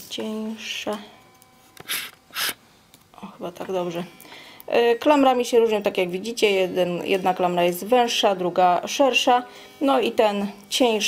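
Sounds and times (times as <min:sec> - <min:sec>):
short breaths: 0:01.8 - 0:02.7, 0:04.2 - 0:04.7.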